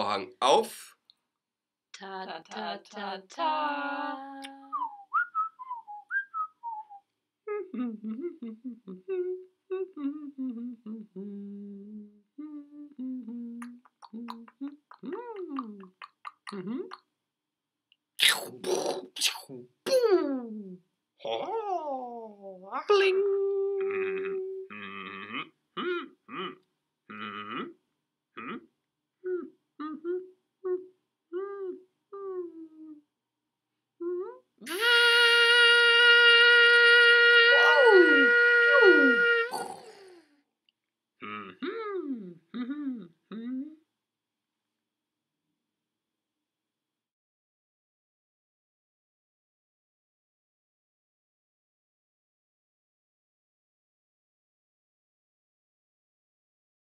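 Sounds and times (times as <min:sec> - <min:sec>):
person making wordless vocal sounds: 0:03.5 - 0:05.0, 0:07.5 - 0:17.1, 0:18.2 - 0:27.8, 0:28.4 - 0:33.1, 0:34.0 - 0:40.3, 0:41.2 - 0:43.9
person whistling a tune: 0:04.8 - 0:07.0
person humming a melody: 0:07.5 - 0:17.0, 0:19.5 - 0:27.8, 0:28.4 - 0:33.1, 0:34.0 - 0:40.2, 0:41.2 - 0:43.9.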